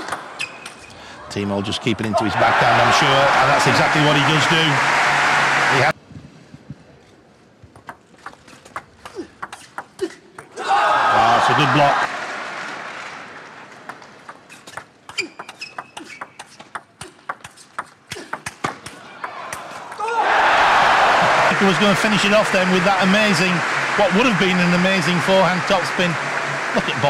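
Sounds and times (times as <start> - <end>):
crowd shouting and cheering: 1.3 - 6.0, 10.5 - 13.4, 19.0 - 27.0.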